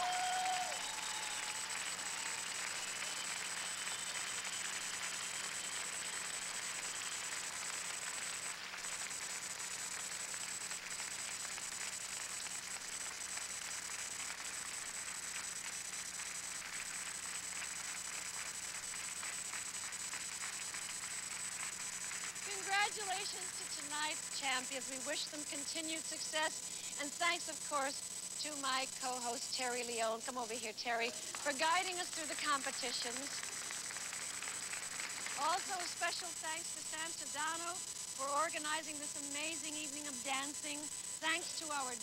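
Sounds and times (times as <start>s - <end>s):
audience applauding: 0.0s - 24.2s, 31.1s - 36.6s.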